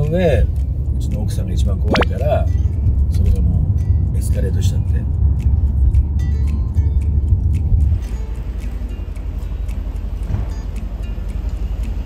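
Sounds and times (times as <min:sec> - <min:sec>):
light background music: 0:00.0 - 0:12.0
road rumble inside car: 0:00.0 - 0:12.0.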